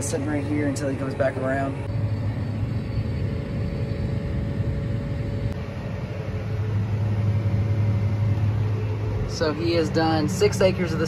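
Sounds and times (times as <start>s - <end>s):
combine harvester engine droning: 0.0s - 11.0s.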